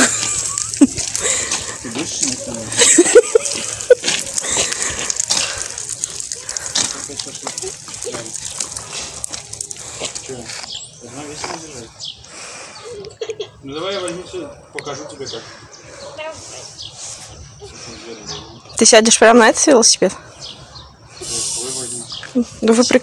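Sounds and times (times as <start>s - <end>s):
indistinct voices: 0.0s - 23.0s
steady hiss: 21.2s - 22.1s.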